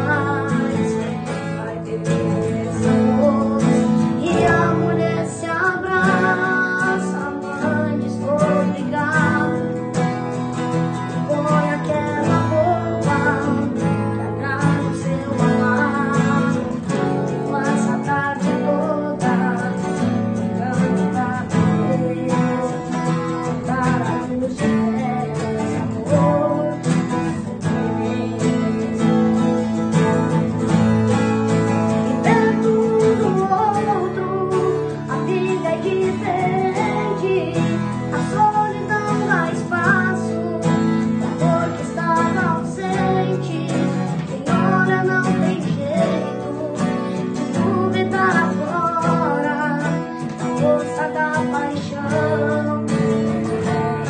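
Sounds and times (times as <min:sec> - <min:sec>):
acoustic guitars strummed: 0:00.0 - 0:54.0
boy singing a ballad: 0:00.0 - 0:54.0.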